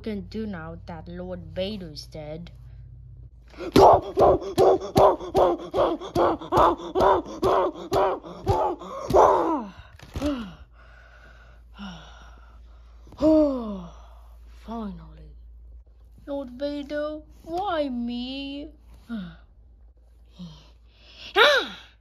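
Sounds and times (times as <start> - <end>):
groan-like voice sounds: 3.6 - 10.6
person laughing: 4.0 - 9.6.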